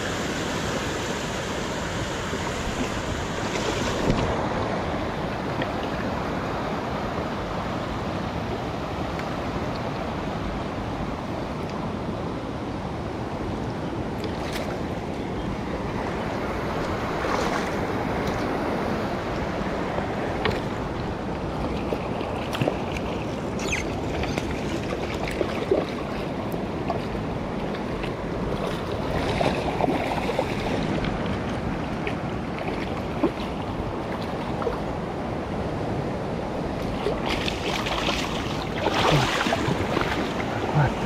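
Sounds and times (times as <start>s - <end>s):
stream running over stones: 20.3s - 35.2s, 36.7s - 41.0s.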